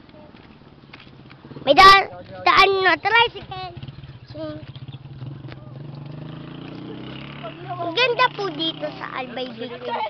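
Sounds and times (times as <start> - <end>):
small motorcycle engine running: 3.2 - 9.8.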